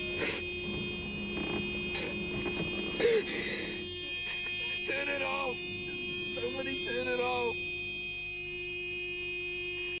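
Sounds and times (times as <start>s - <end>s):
car horn steady tone: 0.0s - 10.0s.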